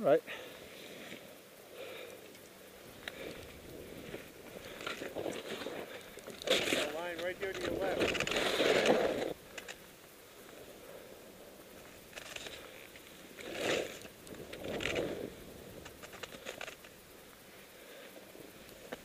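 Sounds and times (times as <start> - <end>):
edges scraping through snow: 7.6 - 9.4.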